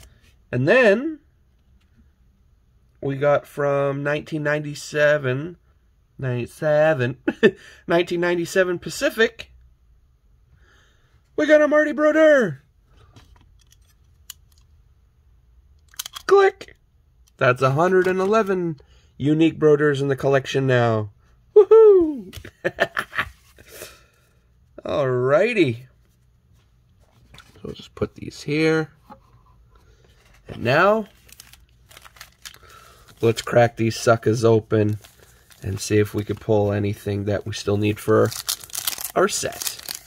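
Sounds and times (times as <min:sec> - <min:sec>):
hands handling a card: 0:29.0 - 0:40.0.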